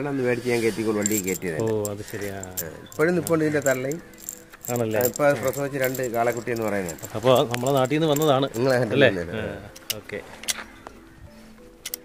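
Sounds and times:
man talking: 0.0s - 4.0s, 4.7s - 10.3s
metallic jingling and clinking: 0.4s - 10.6s.

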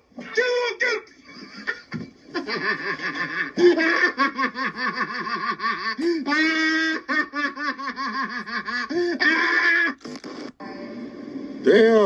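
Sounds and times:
person laughing: 1.3s - 10.0s.

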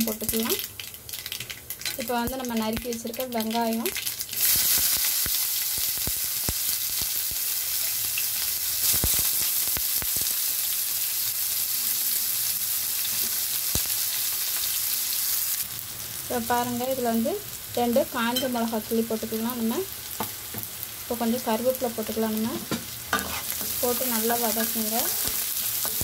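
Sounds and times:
onions sizzling in oil: 0.0s - 26.0s.

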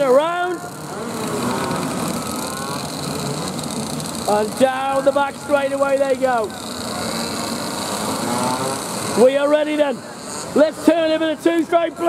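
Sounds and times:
distant kart engines: 0.0s - 12.0s.

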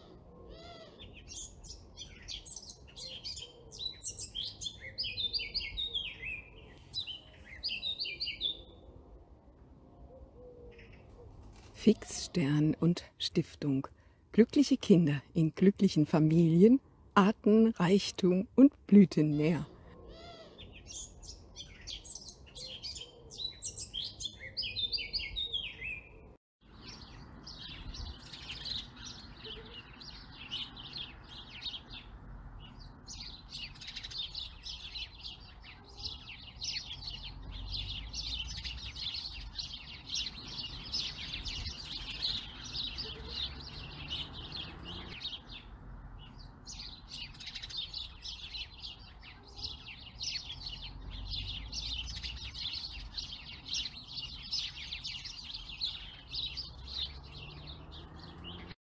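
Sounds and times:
birds chirping and singing: 0.0s - 9.2s, 9.8s - 13.8s, 14.6s - 58.8s.

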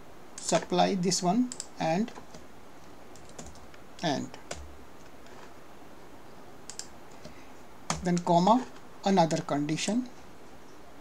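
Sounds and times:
computer keyboard keystrokes: 1.5s - 1.7s, 3.2s - 3.7s, 6.7s - 8.3s.

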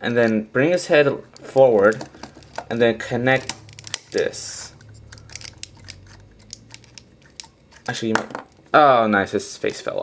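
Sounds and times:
low steady hum: 0.0s - 10.0s
plastic toy parts clicking: 5.0s - 8.1s.

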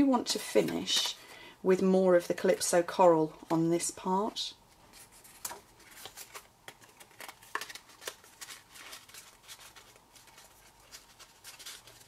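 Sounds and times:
paper rustling: 4.8s - 12.0s.

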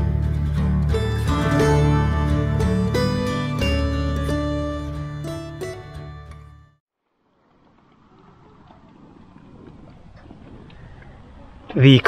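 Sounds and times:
wind rumble on microphone: 7.6s - 11.8s.

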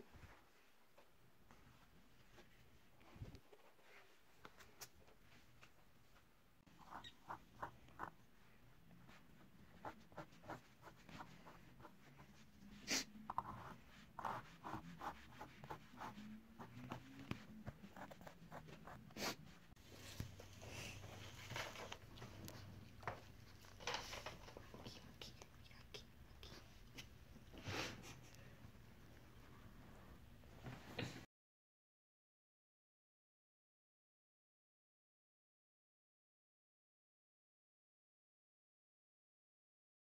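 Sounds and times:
stylus scratching coated paper: 6.7s - 8.2s, 9.1s - 19.6s.

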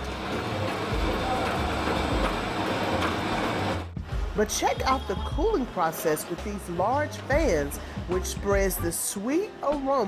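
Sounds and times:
production line machinery running: 0.0s - 10.0s.

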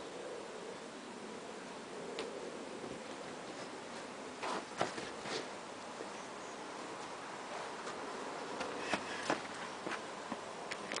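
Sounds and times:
outdoor hiss: 0.0s - 11.0s
child's footsteps on grass: 7.0s - 10.6s.

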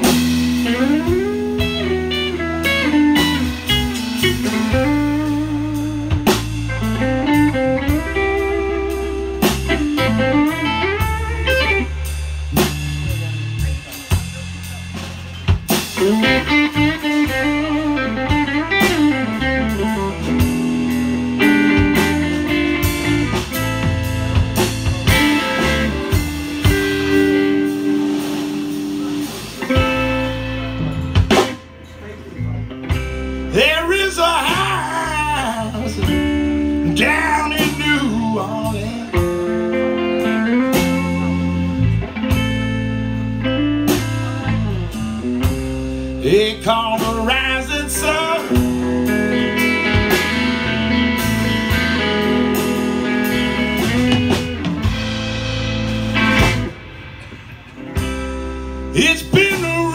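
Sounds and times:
drum kit: 0.0s - 59.9s
electric bass: 0.0s - 59.9s
lead electric guitar: 0.0s - 59.9s.

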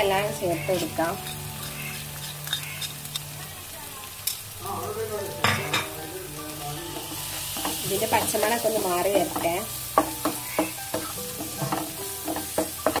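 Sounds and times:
vegetables sizzling in oil: 0.0s - 13.0s
spatula knocking on pan: 7.6s - 13.0s
wooden spatula scraping pan: 10.5s - 13.0s.

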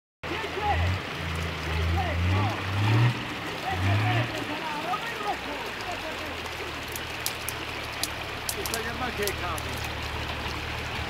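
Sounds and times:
truck engine revving: 0.7s - 5.0s.

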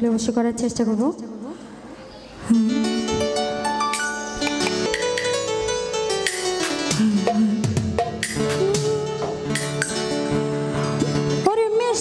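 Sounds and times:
held keyboard notes: 2.5s - 11.3s
hand drums playing rhythm: 3.2s - 10.2s.

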